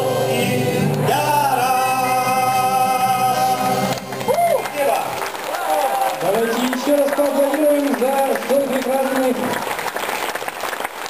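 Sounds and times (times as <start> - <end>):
audience applauding: 3.8 - 11.0.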